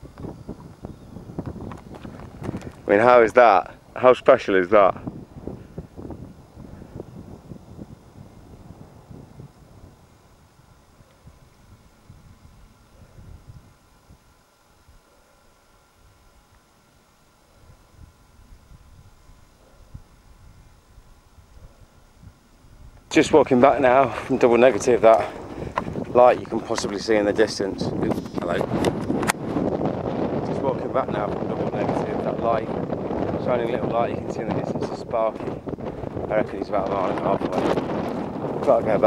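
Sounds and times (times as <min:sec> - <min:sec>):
wind buffeting microphone: 0:00.0 - 0:15.2, 0:17.3 - 0:39.0.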